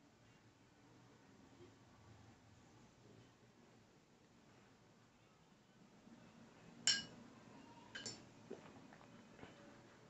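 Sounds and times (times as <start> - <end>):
paintbrush clinking on glass: 6.9 - 7.2, 7.9 - 8.2.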